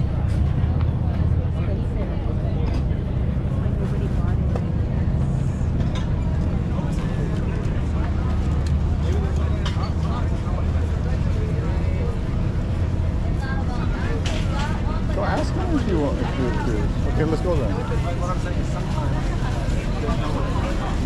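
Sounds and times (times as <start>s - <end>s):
crowd chatter: 0.0s - 21.0s.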